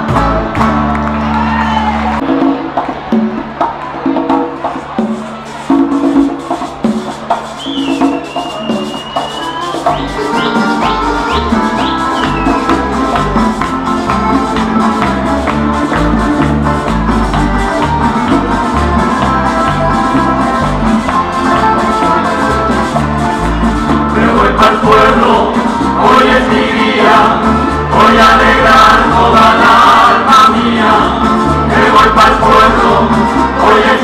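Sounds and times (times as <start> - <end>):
accordion: 0.0 - 1.2, 7.9 - 34.0
bass guitar: 0.0 - 3.6, 8.4 - 34.0
hand percussion: 2.2 - 34.0
strummed guitars: 8.0 - 34.0.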